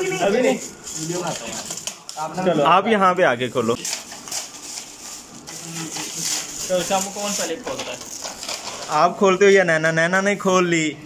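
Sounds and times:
foil gift wrap crinkling: 0.0s - 2.5s, 3.8s - 9.9s.

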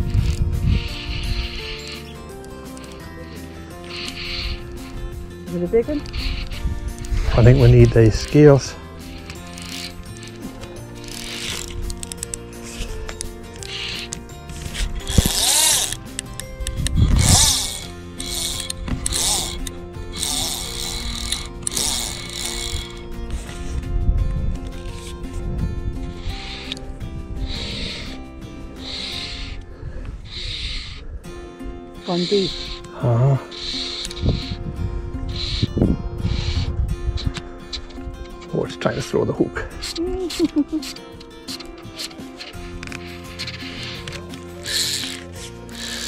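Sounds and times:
fly reel drag ratcheting: 0.0s - 31.2s, 32.0s - 46.0s
background music: 0.0s - 46.0s.

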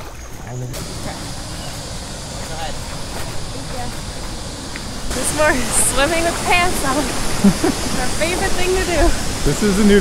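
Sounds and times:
steady rushing hiss: 0.0s - 10.0s.

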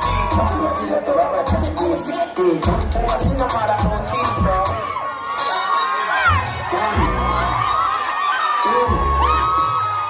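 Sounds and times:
crowd screaming and cheering: 0.0s - 10.0s
music with bass beat: 0.0s - 10.0s.

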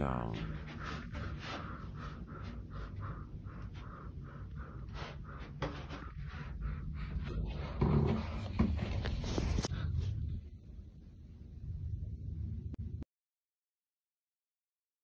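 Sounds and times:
person panting heavily: 0.4s - 10.0s.

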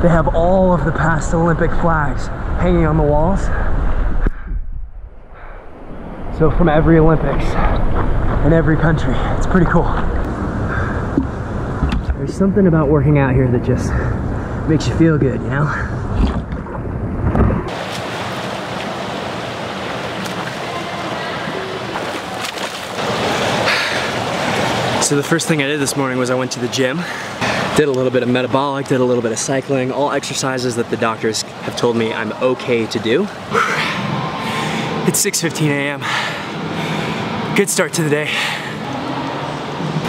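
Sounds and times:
water rumbling against camera: 3.6s - 26.0s
water splashing from swimming: 16.2s - 26.1s.

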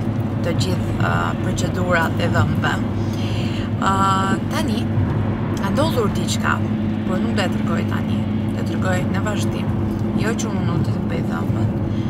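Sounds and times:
car interior rumble: 0.0s - 12.0s
low hum: 0.0s - 12.0s
woman talking: 0.4s - 5.0s, 5.6s - 11.9s.

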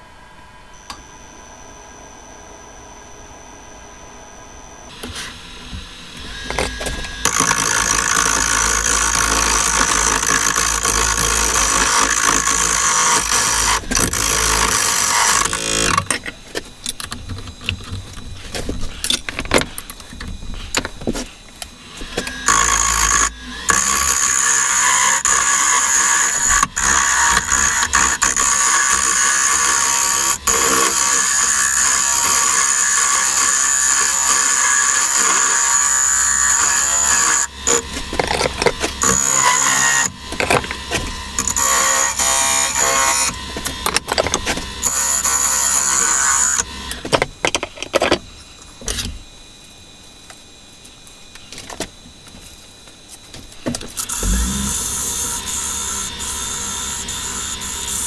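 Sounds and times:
wood lathe tool cutting: 6.0s - 16.1s, 21.9s - 47.0s, 54.0s - 58.0s.

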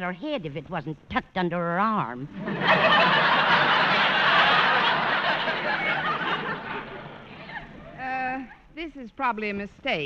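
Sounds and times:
audience laughing: 2.4s - 8.0s.

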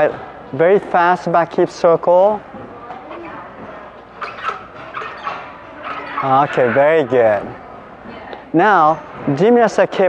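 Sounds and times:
rail squeaking and creaking: 4.1s - 7.5s.

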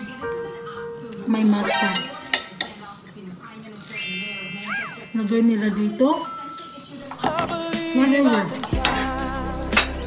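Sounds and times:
tableware clinking on plate: 1.8s - 2.9s, 6.4s - 10.0s.

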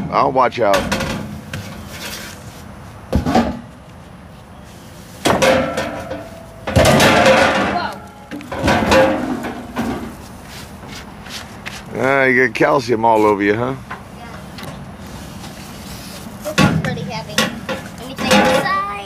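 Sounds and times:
pipe and debris clattering on truck bed: 0.7s - 2.2s, 5.2s - 10.2s, 16.5s - 19.0s.

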